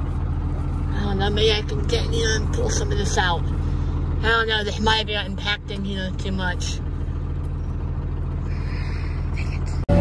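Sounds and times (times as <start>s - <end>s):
tractor engine running: 0.0s - 10.0s.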